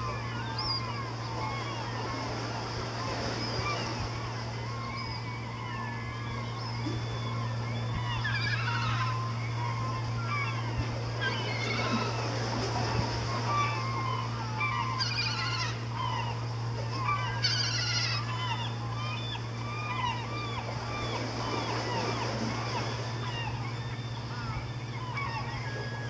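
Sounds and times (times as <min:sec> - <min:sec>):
birds chirping: 0:00.0 - 0:26.0
steady low hum: 0:00.0 - 0:26.0.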